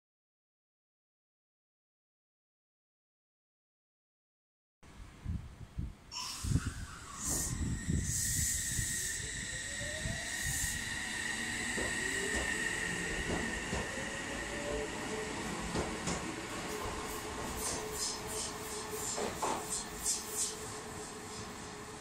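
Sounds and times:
train brakes air hisses: 6.1 - 14.7, 16.6 - 22.0
traction motor whine: 6.5 - 17.0.

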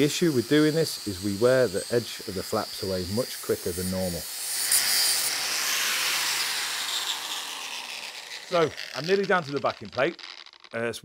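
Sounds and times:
angle grinder spinning down: 0.0 - 10.9.

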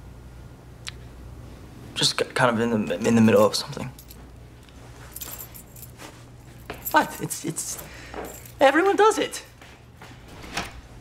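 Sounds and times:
low steady hum: 0.0 - 11.0
faint rustle or jingle: 3.0 - 9.6.

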